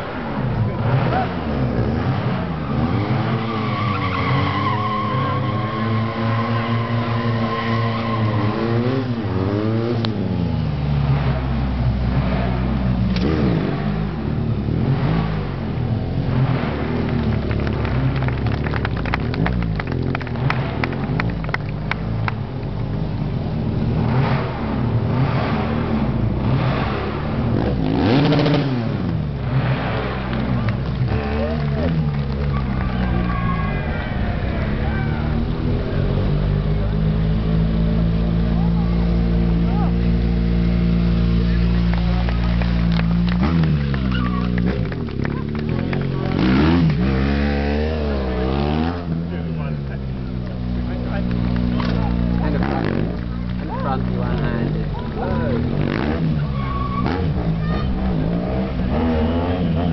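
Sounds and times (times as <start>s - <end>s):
motorcycle engine revving: 0.0s - 22.6s, 23.2s - 59.9s.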